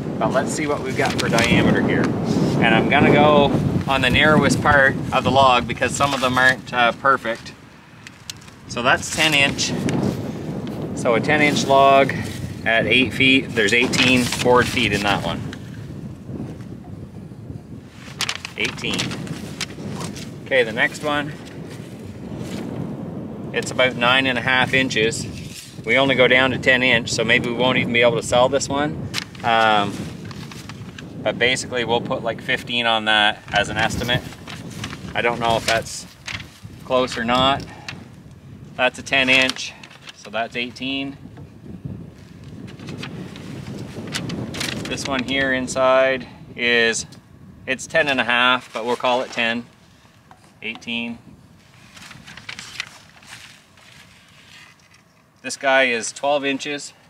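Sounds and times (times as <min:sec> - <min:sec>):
wind buffeting microphone: 0:00.0 - 0:56.2.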